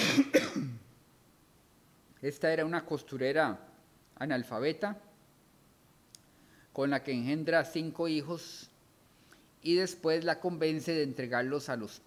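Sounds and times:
man coughing: 0:00.0 - 0:00.9.

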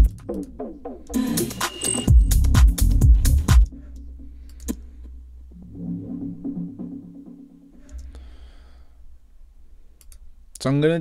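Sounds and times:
click: 0:04.5 - 0:04.8, 0:10.0 - 0:10.6
pulsing low synth: 0:05.2 - 0:07.8.

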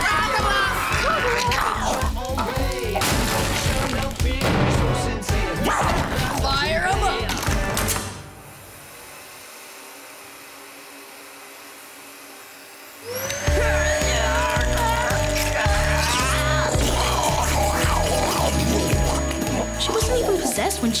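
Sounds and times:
loud music with pounding beat: 0:00.0 - 0:08.0, 0:13.5 - 0:21.0
cartoon hose-gun rising whine: 0:08.5 - 0:21.0.

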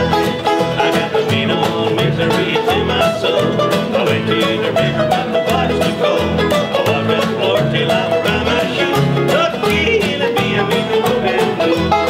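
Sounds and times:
acoustic guitar picking: 0:00.0 - 0:12.0
banjo picking: 0:00.0 - 0:12.0
upright bass notes: 0:00.0 - 0:12.0.

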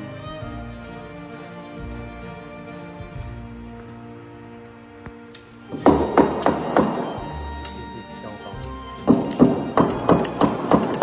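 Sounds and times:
background music: 0:00.0 - 0:11.0
mallet knocking wood: 0:05.7 - 0:07.3, 0:08.9 - 0:11.0.

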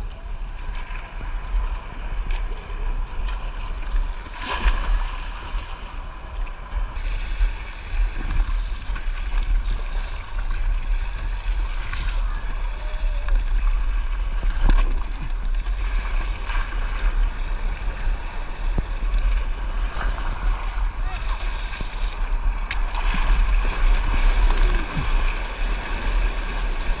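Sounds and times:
water rushing along hull: 0:00.0 - 0:27.0
wind buffeting microphone: 0:00.0 - 0:27.0
paddle blades splashing: 0:00.3 - 0:27.0
breaking surf: 0:00.6 - 0:27.0.

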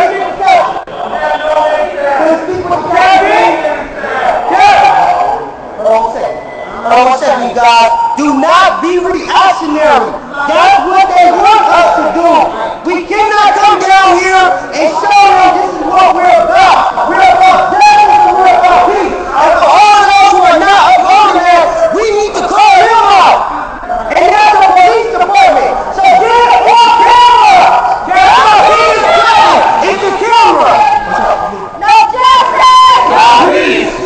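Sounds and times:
people shouting: 0:00.0 - 0:05.6, 0:13.1 - 0:34.0.

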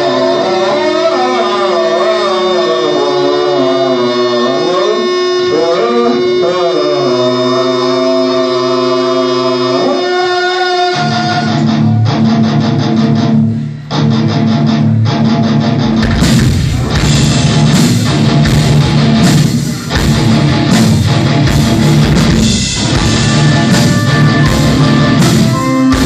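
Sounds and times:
distorted electric guitar: 0:00.0 - 0:26.0
bass droning: 0:11.0 - 0:26.0
drums and cymbals: 0:15.8 - 0:26.0.

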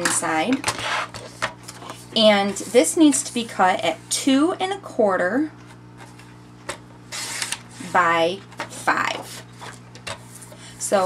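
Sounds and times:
papery scrape: 0:00.8 - 0:03.6, 0:07.1 - 0:08.0.

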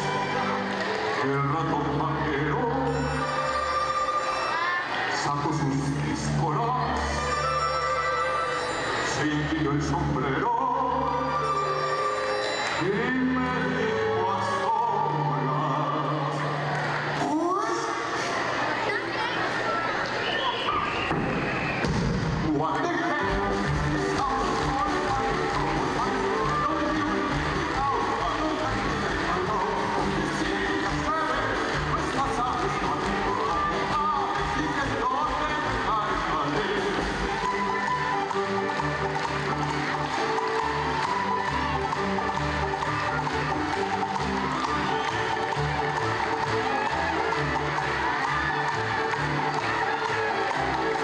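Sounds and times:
orchestra playing lively tune: 0:00.0 - 0:16.5, 0:22.6 - 0:51.0
man singing: 0:09.1 - 0:11.8, 0:12.8 - 0:16.6, 0:22.7 - 0:37.2.

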